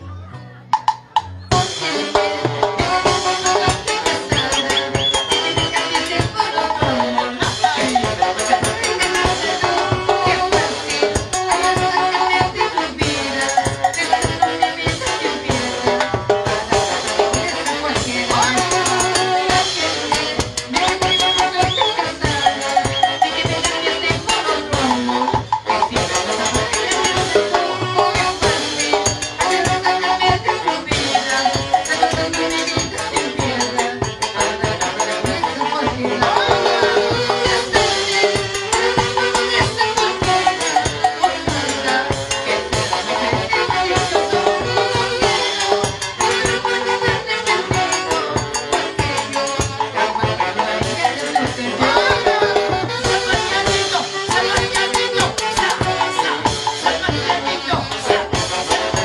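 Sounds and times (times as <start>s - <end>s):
folk band with saxophones: 0.0s - 59.0s
drums cymbals and rattling percussion: 0.7s - 59.0s.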